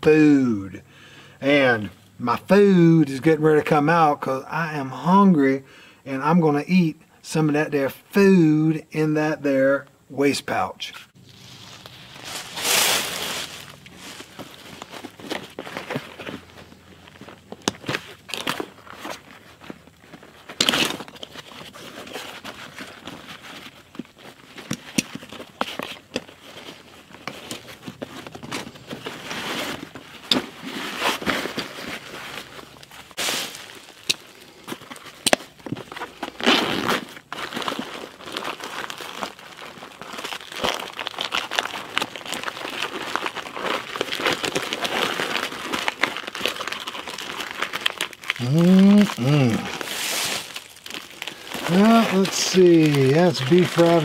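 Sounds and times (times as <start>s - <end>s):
fabric and webbing rustling: 11.1s - 54.0s
plastic wrapper crinkling: 11.2s - 54.0s.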